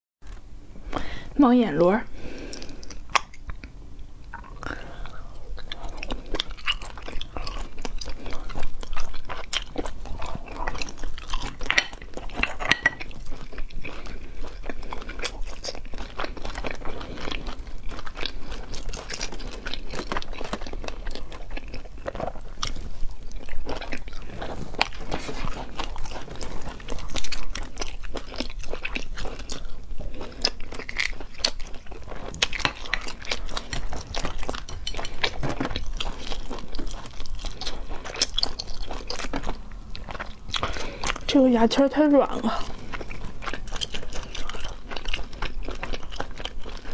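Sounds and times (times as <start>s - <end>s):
chewing and crunching: 0.2s - 46.9s.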